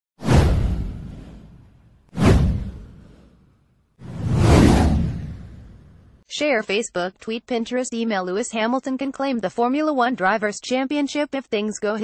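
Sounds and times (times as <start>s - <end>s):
low rumble: 0.2s - 3.3s, 4.0s - 6.2s
whoosh sound effects: 0.2s - 3.4s, 4.0s - 6.2s.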